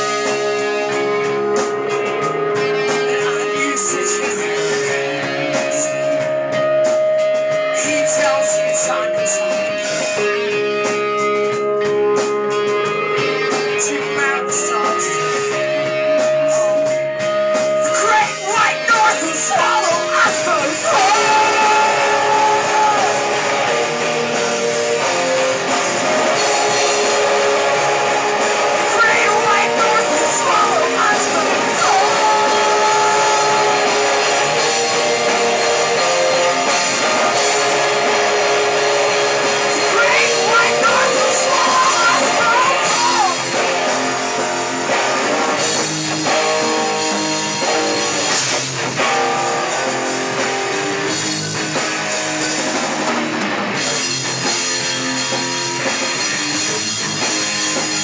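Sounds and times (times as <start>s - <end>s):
person singing: 0.0s - 11.0s, 11.9s - 17.0s, 17.7s - 43.7s
rock band playing: 0.0s - 58.0s.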